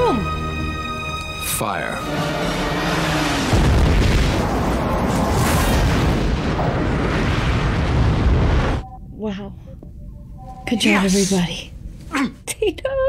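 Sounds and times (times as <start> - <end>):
film music: 0.0 - 6.8, 8.6 - 12.2
rumbling blast: 2.8 - 8.8
starship explosion boom: 3.3 - 8.8.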